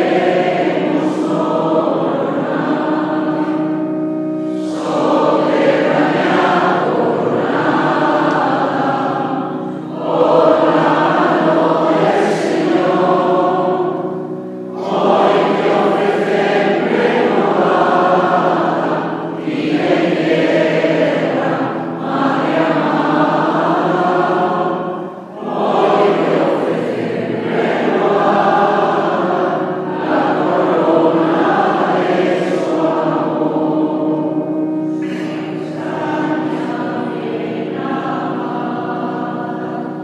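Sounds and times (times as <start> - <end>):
mixed choir singing a hymn: 0.0 - 40.0.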